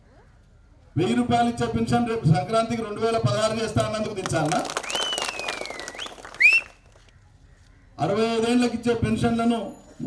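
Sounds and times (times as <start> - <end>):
people clapping: 3.7 - 7.1
person whistling: 4.9 - 6.8.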